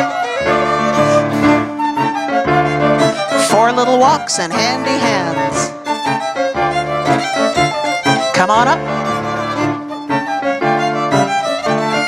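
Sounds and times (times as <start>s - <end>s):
fiddle melody: 0.0s - 12.0s
folk dance band playing: 0.0s - 12.0s.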